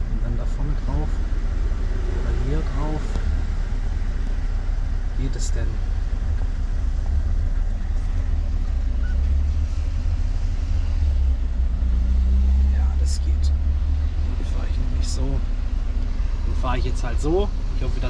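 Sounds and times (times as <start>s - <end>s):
diesel truck engine rumble: 0.0s - 18.0s.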